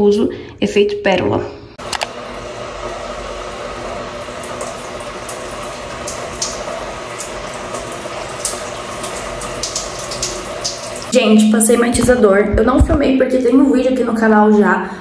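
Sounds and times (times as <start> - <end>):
shower water pouring: 1.8 - 12.2
splashes of hands in wet hair: 4.4 - 11.1.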